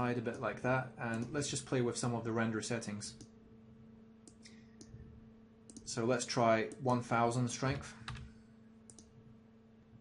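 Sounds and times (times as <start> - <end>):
electrical hum: 0.0 - 10.0
computer mouse clicks: 1.1 - 1.4, 4.2 - 5.0, 5.7 - 5.9, 8.9 - 9.1.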